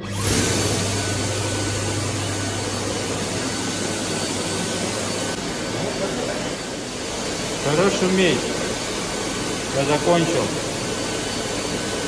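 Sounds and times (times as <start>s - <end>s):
hand dryer blowing air: 0.0s - 12.0s.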